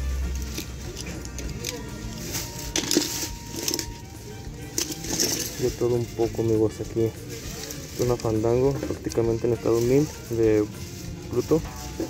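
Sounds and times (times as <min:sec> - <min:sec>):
toy cars clattering: 0:00.1 - 0:12.0.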